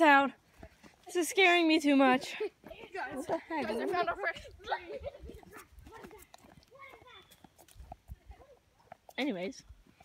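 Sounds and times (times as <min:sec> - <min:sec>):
excited children's voices: 0:01.0 - 0:08.8.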